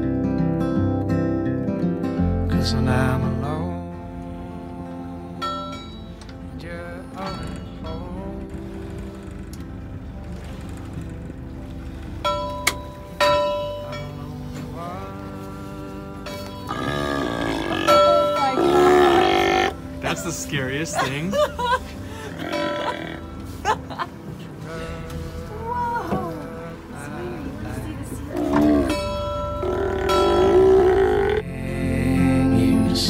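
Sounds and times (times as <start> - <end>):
background music: 0.0 - 33.0
sea lions roaring: 16.6 - 20.4, 22.2 - 23.6, 24.5 - 31.5.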